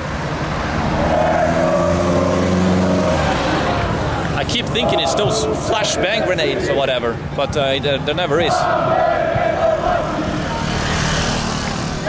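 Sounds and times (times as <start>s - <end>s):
motorbike passing: 0.0s - 6.7s, 8.6s - 12.0s.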